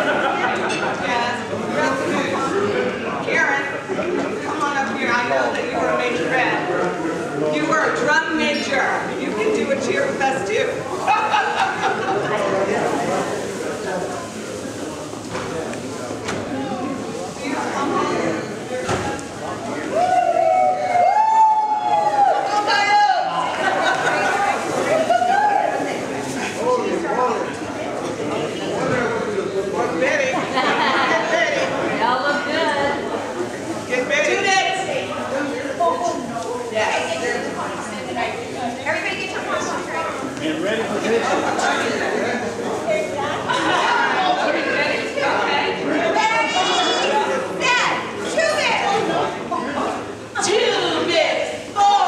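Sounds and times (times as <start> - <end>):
women shouting and whooping: 19.9 - 23.5, 24.9 - 25.9.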